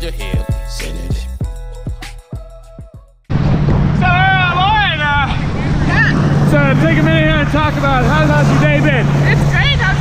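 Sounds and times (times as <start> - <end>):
motorboat engine drone: 3.3 - 10.0
wind on microphone: 3.3 - 10.0.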